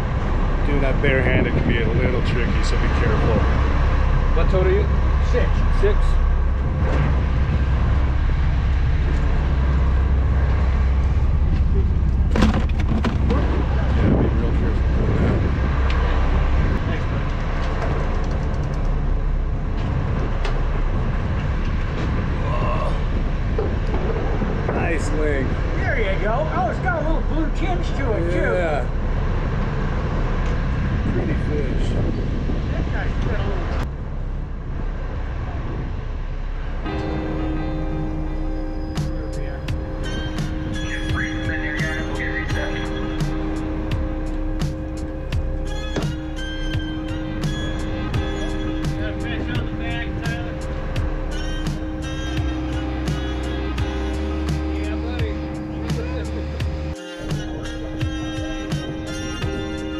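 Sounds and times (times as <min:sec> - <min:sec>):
boat engine rumble: 0:00.0 - 0:59.9
indistinct chatter: 0:36.8 - 0:59.9.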